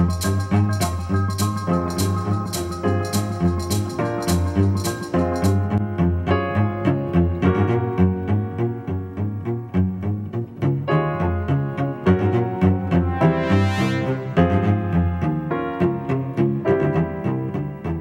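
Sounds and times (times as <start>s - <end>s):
bass and keyboard music with beat: 0.0s - 18.0s.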